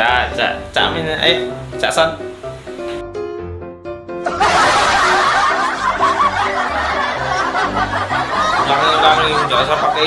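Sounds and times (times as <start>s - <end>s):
light background music: 0.0s - 10.0s
men laughing loudly: 4.3s - 10.0s.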